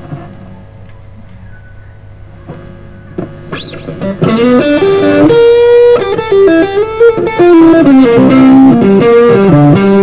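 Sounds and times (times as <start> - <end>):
amplifier hum: 0.0 - 10.0
electric guitar plucked notes: 2.3 - 10.0.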